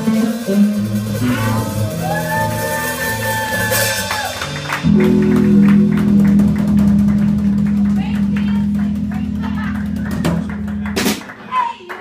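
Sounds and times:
blues band holding a low note: 0.0s - 11.4s.

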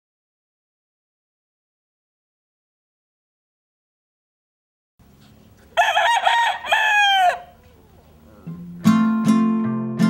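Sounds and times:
rooster crowing: 5.7s - 7.6s
acoustic guitar notes: 7.5s - 10.0s.

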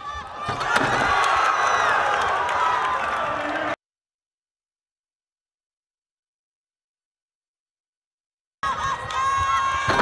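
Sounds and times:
crowd cheering loudly: 0.0s - 3.8s.

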